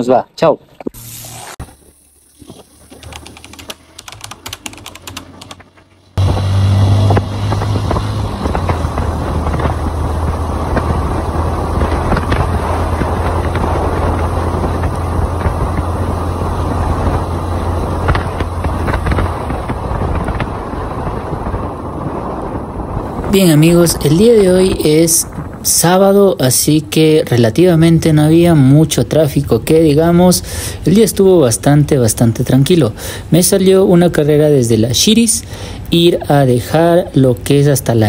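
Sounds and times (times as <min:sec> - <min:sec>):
crackling static: 0:00.8 - 0:32.8
wind and road noise: 0:00.8 - 0:38.0
motorcycle engine running: 0:03.0 - 0:21.8.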